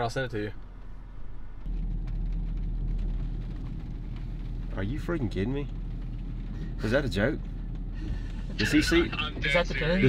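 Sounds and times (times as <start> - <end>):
road and tyre noise: 0.0 - 10.0
truck engine hum: 0.0 - 10.0.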